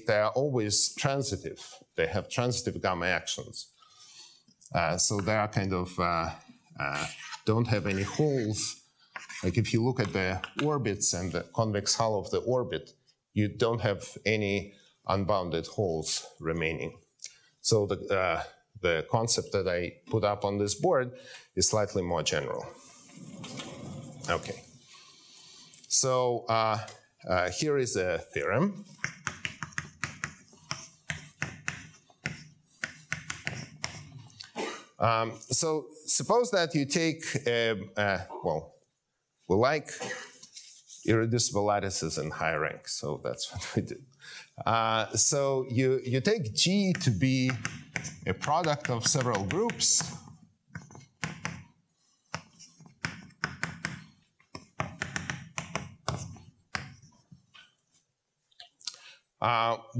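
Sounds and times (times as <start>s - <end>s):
chalk writing on blackboard: 6.9s - 10.2s, 28.8s - 34.3s, 47.0s - 57.5s.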